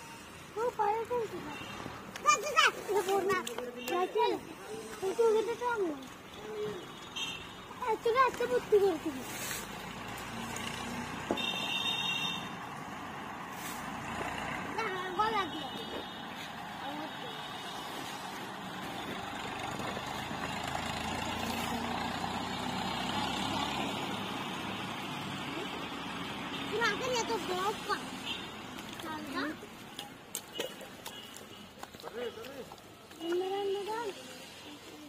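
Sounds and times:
rushing outdoor background noise: 0.0s - 35.0s
high horn-like tone: 11.3s - 12.6s.

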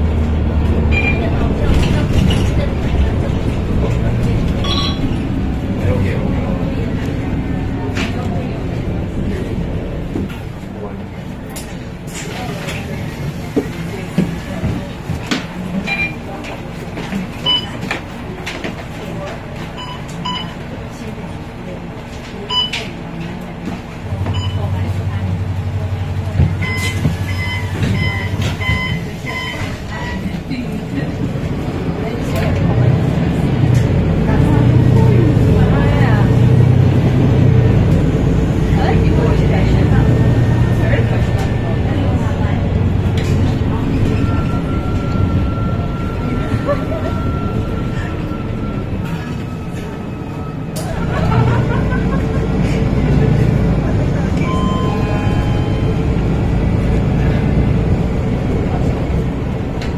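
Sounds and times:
bus diesel engine running: 0.0s - 59.9s.

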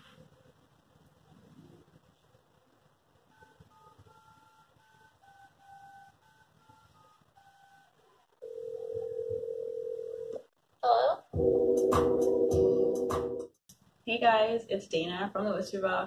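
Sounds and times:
steady telephone tone: 3.3s - 10.4s.

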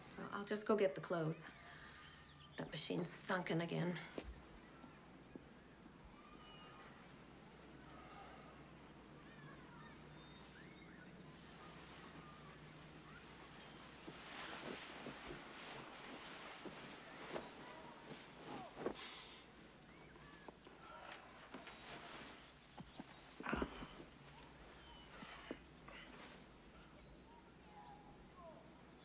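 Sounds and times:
clothing rustle: 6.2s - 27.3s
soft footsteps: 11.2s - 27.0s
man sitting down on sofa: 13.2s - 19.7s.

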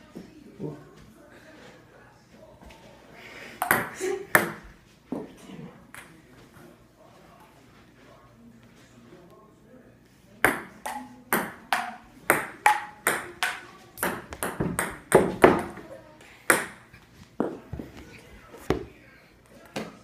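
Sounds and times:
ping pong ball hitting paddles: 3.6s - 4.6s, 10.4s - 15.8s, 16.5s - 16.8s.

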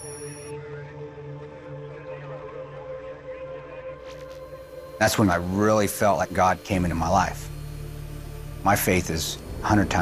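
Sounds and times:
ambient electronic music: 0.0s - 10.0s.

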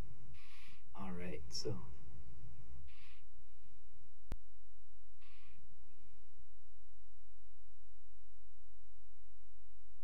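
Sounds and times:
low electrical hum: 0.0s - 10.0s
soft hiss: 0.0s - 10.0s.

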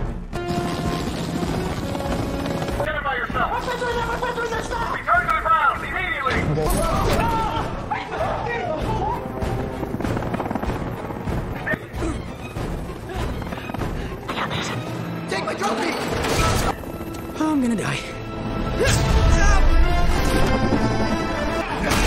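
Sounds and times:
dramatic orchestral music: 0.0s - 22.0s
helicopter rotor rumble: 0.3s - 6.4s, 7.4s - 18.7s.

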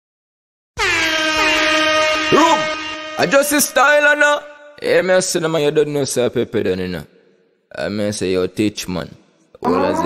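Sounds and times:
air horn blast: 0.8s - 4.8s.

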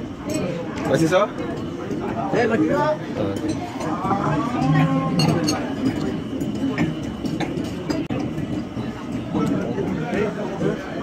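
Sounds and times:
restaurant background din: 0.0s - 11.0s
tableware clicking: 3.3s - 9.9s.

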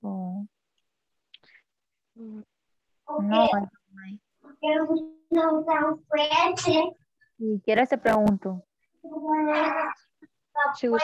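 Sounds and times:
person speaking: 3.1s - 6.7s.

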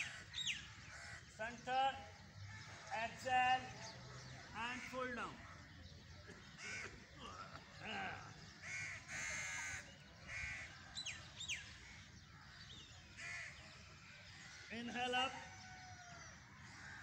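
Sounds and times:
crows cawing: 0.0s - 1.3s, 2.4s - 3.2s, 6.3s - 17.0s.

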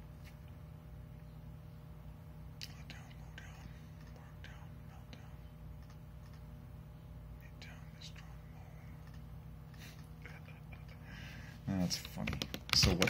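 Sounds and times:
steady low hum: 0.0s - 13.0s
man whispering: 2.6s - 5.5s, 7.4s - 9.0s, 10.2s - 13.0s.

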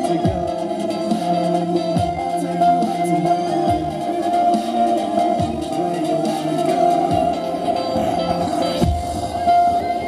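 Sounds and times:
dubstep through stage speakers: 0.0s - 10.0s.

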